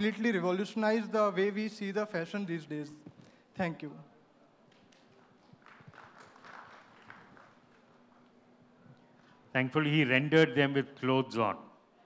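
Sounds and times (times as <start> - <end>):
audience clapping: 4.6 - 9.1.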